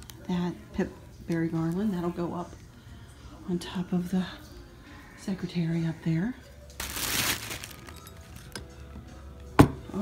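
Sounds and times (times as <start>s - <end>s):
faint background music: 0.0s - 10.0s
packing paper rustling: 6.8s - 8.6s.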